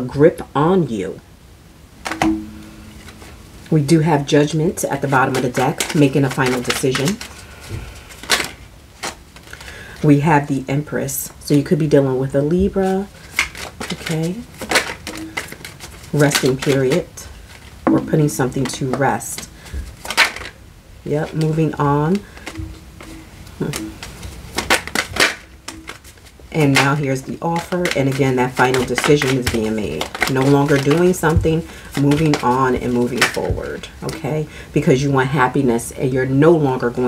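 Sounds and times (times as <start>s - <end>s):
cards being handled: 4.8s - 9.7s, 12.6s - 20.6s, 21.2s - 34.2s.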